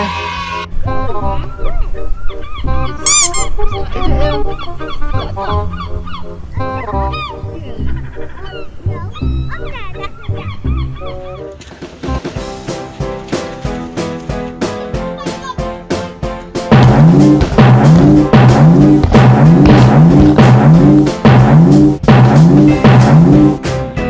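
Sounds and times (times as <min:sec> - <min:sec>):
background music: 0:00.0 - 0:24.0
honking bird calls: 0:01.2 - 0:11.6
steady drum beat: 0:16.6 - 0:23.8.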